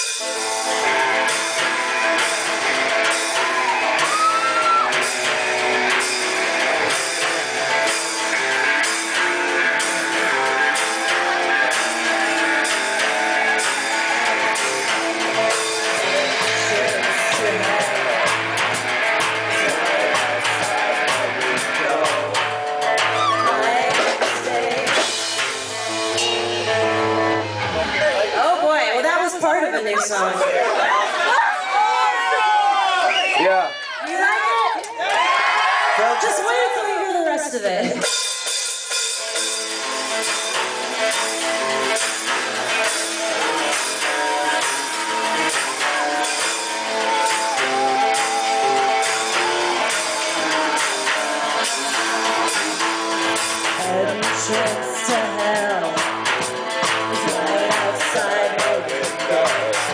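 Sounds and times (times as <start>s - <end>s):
crowd cheering and shouting: 0.0s - 38.2s, 39.3s - 59.9s
live rock band playing: 0.0s - 59.9s.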